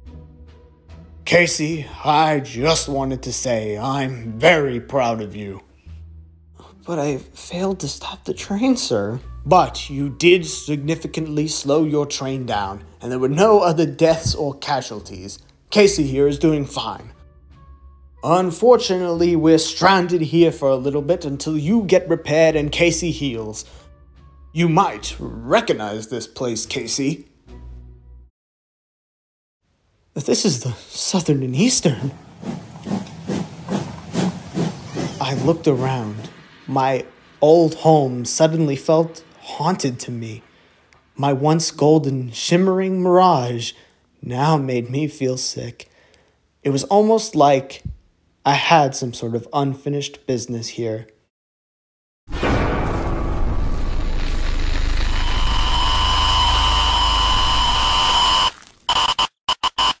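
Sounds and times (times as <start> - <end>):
steam locomotive chuffing: 31.8 - 37.0
low hum: 52.3 - 58.5
loud static noise: 53.9 - 58.5
steady high tone: 54.0 - 58.5.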